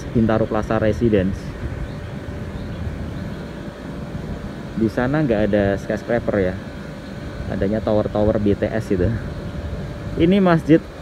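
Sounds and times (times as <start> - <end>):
faint steady hum: 0.0 - 11.0
low outdoor rumble: 0.0 - 11.0.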